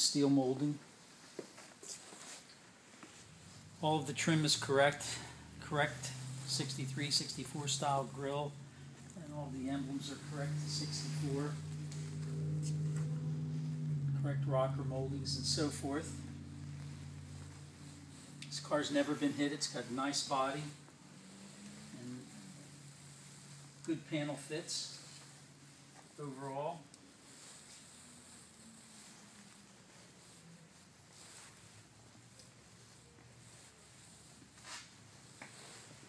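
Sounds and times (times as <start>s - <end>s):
low hum of held tones: 0.0s - 36.0s.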